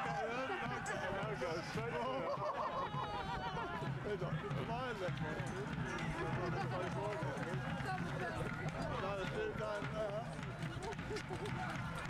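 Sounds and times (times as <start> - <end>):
people laughing: 0.0 - 5.0, 6.0 - 7.4, 10.6 - 12.0.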